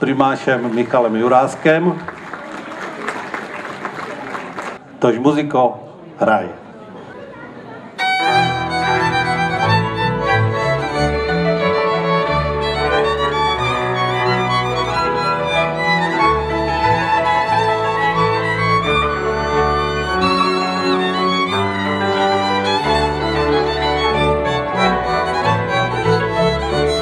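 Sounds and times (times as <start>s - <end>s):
double bass: 8.0s - 27.0s
violins: 8.0s - 27.0s.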